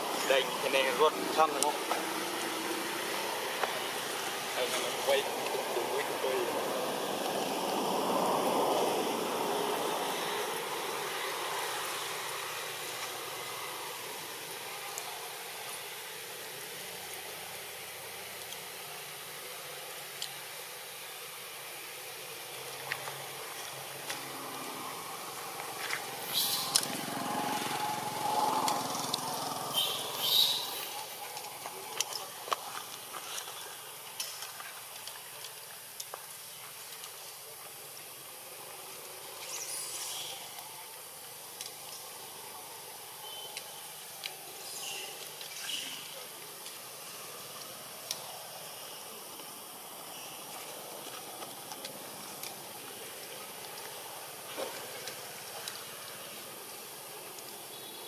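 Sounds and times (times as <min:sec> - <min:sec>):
outdoor background hiss: 0:00.0 - 0:58.0.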